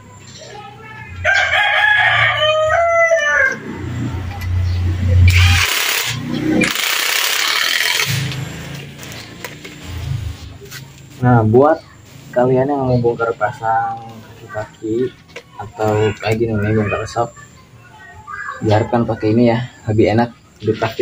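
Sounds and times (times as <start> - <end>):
rooster crowing: 1.1 - 4.1
impact wrench bursts: 5.2 - 10.0.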